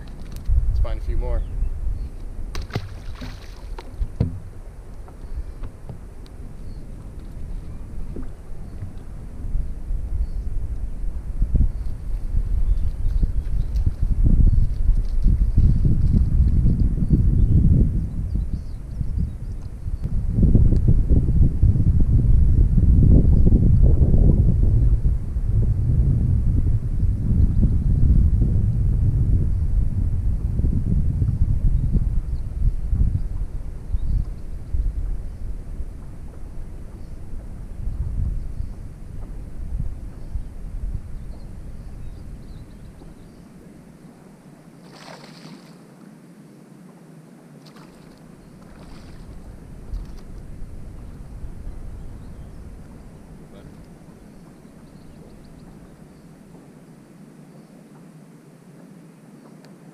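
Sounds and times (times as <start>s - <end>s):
wind buffeting microphone: 0.0s - 45.6s, 47.8s - 57.2s.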